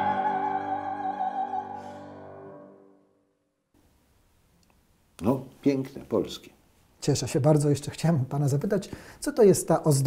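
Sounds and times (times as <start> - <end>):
faint room tone: 0.0 - 10.0.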